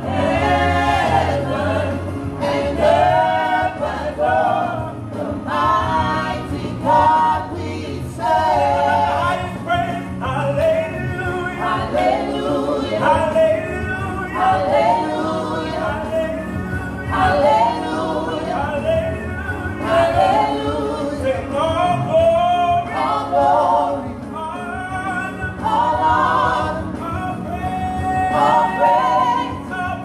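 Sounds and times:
group singing gospel in harmony: 0:00.0 - 0:30.0.

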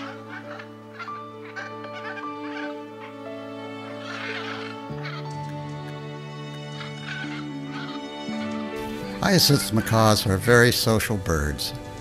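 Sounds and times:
rasping bird calls: 0:00.0 - 0:10.5
background music with held chords: 0:00.0 - 0:12.0.

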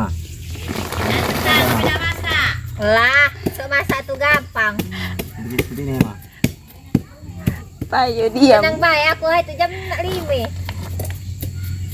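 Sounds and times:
machete scraping sugarcane: 0:00.4 - 0:02.4.

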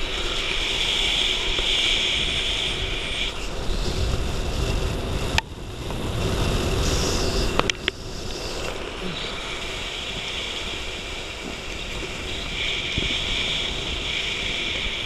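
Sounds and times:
wind rushing over camera: 0:00.0 - 0:15.0.

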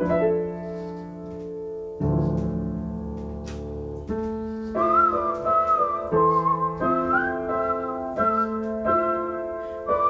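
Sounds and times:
upright piano chords: 0:00.0 - 0:10.0
whistled melody: 0:04.4 - 0:10.0.

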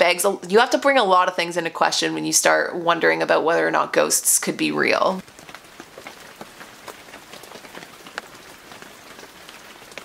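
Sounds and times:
rain falling: 0:00.0 - 0:10.0
raindrops ticking: 0:00.0 - 0:10.0.

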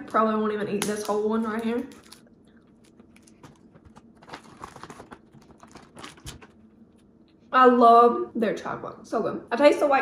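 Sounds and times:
foil wrapper rustling: 0:01.5 - 0:06.6.

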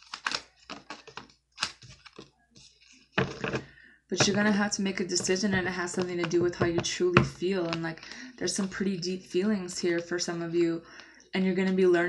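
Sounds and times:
cards being shuffled: 0:00.0 - 0:03.6.

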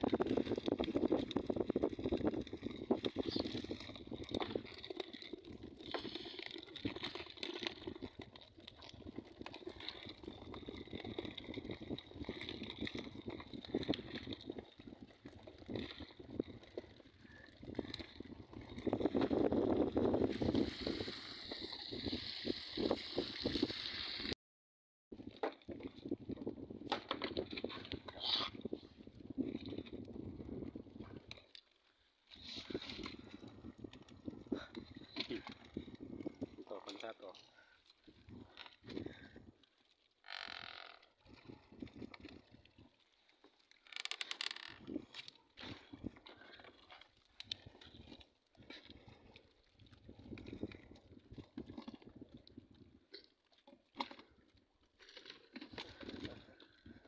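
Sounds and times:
fish flapping and slapping: 0:00.0 - 0:19.4
water splashing and dripping: 0:00.1 - 0:24.4.

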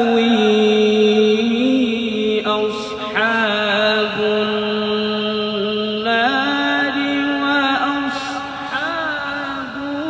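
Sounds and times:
man reciting melodically through pa: 0:00.0 - 0:10.0.

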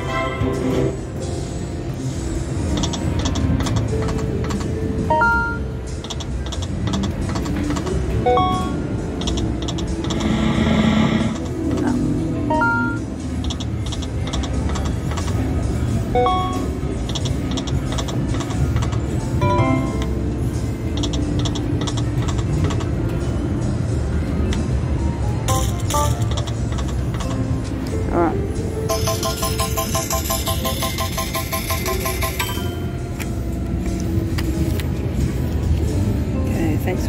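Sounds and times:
poker machine chimes and jingles: 0:08.2 - 0:10.0, 0:28.9 - 0:33.1.

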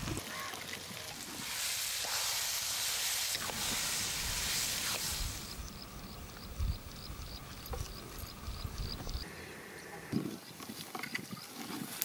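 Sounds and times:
frying sizzle: 0:01.0 - 0:07.1
cricket chirping: 0:05.0 - 0:09.3.

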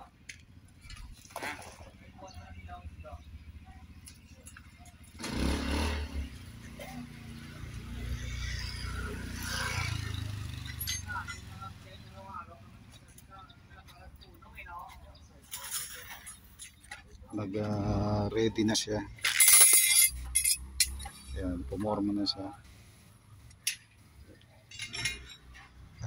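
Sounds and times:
faint voices: 0:01.0 - 0:05.2, 0:10.7 - 0:20.6
vehicle passing: 0:05.0 - 0:13.1.

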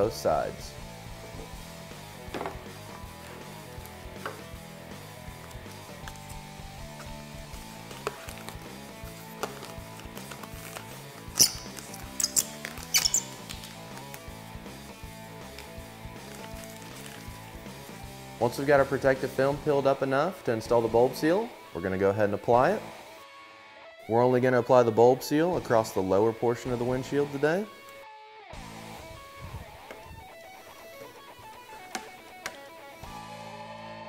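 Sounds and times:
plastic film crackling: 0:07.1 - 0:14.2, 0:15.6 - 0:17.4
guitar music: 0:27.7 - 0:34.0.

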